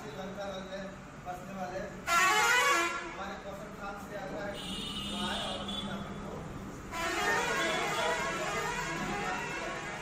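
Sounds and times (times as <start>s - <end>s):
vehicle horn honk: 2.0s - 3.2s, 4.5s - 6.1s, 6.9s - 10.0s.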